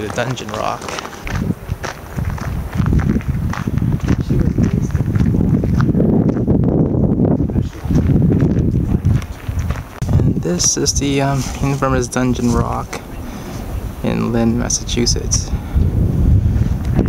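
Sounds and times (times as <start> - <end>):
footsteps on dry leaves: 0.0 - 6.5
rough low rumble: 0.0 - 17.0.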